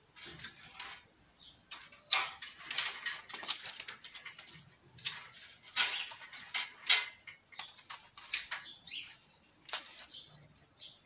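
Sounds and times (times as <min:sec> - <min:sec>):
rustle of woody canes: 0:00.0 - 0:11.0.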